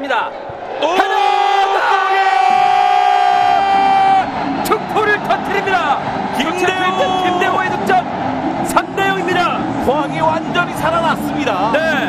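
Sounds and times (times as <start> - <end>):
noisy stadium crowd: 0.0 - 12.0.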